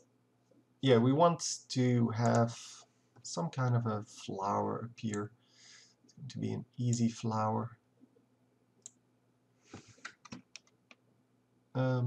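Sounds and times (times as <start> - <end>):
computer mouse click: 2.2 - 2.5.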